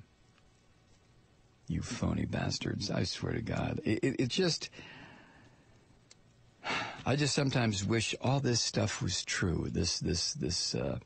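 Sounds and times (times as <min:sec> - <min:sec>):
man sighing: 0:06.6 - 0:07.0.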